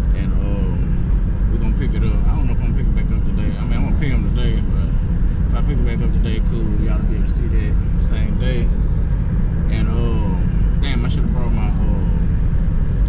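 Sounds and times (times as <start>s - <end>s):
car road and engine rumble: 0.0s - 13.0s
person speaking: 9.7s - 12.2s.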